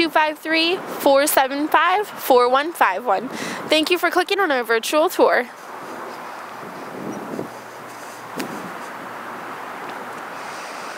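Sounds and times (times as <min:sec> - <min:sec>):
wind on microphone: 0:05.9 - 0:09.1.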